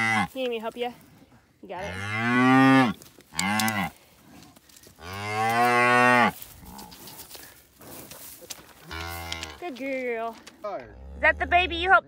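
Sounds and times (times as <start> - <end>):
cow mooing: 0.0 - 0.3, 1.8 - 3.9, 5.0 - 7.1, 8.8 - 9.6.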